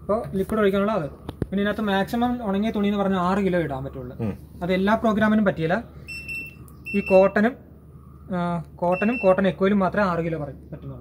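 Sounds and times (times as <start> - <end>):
washing machine control panel beeps: 6.1 - 7.4, 8.9 - 9.5.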